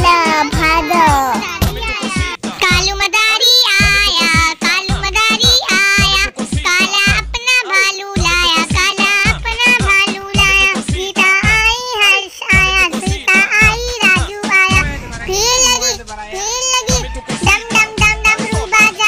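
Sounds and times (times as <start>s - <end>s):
backing music with low beat: 0.0s - 3.1s, 12.6s - 19.0s
high voice singing: 13.4s - 19.0s.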